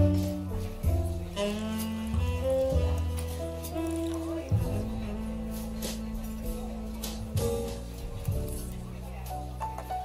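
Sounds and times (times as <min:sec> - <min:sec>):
saxophone melody: 0:00.0 - 0:06.9
bass line: 0:00.0 - 0:09.6.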